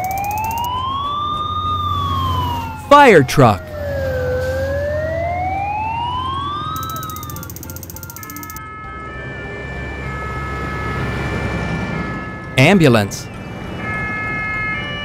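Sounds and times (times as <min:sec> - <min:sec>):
cartoon siren wail: 0:00.0 - 0:08.6
siren-like tones changing pitch: 0:00.0 - 0:08.6.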